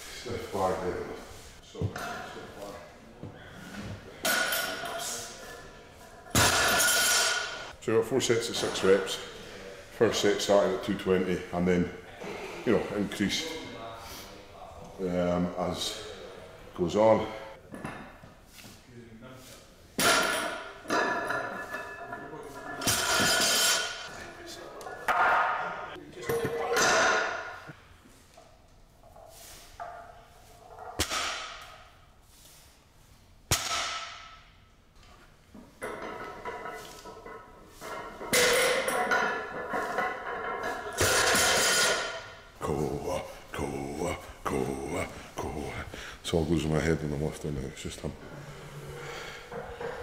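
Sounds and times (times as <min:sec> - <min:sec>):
barbell plates knocking and clanking: 0:38.0 - 0:42.3
lifter grunting and breathing: 0:42.6 - 0:46.3.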